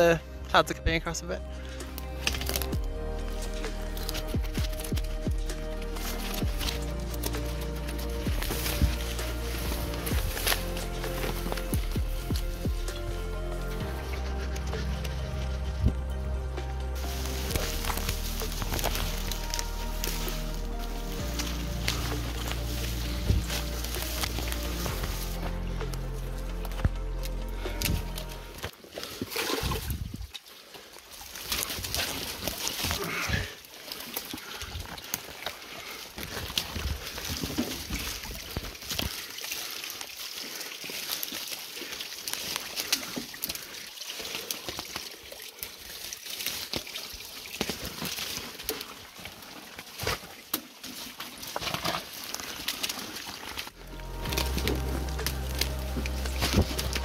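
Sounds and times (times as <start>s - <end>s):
background music: 0.0s - 28.8s, 53.7s - 57.0s
running creek water: 0.0s - 57.0s
footsteps through undergrowth: 1.4s - 57.0s
brush rustling and snapping: 1.6s - 30.4s, 31.2s - 33.2s, 49.7s - 57.0s.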